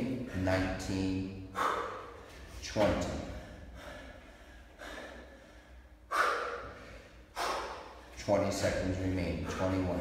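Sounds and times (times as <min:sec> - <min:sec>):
man breathing heavily: 0:00.0 - 0:02.6, 0:03.2 - 0:08.3.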